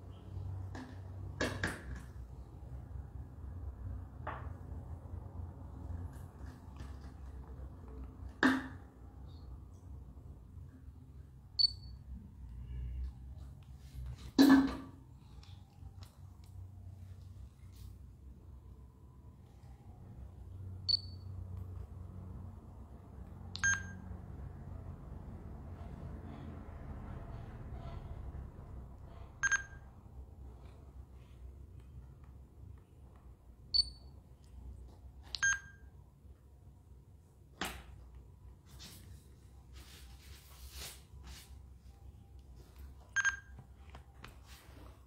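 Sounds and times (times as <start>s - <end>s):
electronic beeps: 20.8s - 21.3s, 23.6s - 24.0s, 33.8s - 34.1s, 43.1s - 43.6s.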